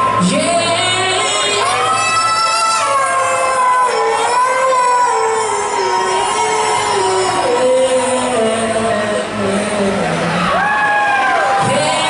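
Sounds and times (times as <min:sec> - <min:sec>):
amplified live band music: 0:00.0 - 0:12.0.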